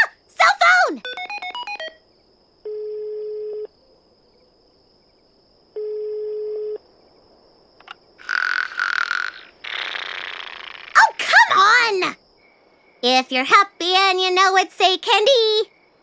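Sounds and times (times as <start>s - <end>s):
telephone ringback tone: 1.0s - 2.0s, 5.8s - 6.8s.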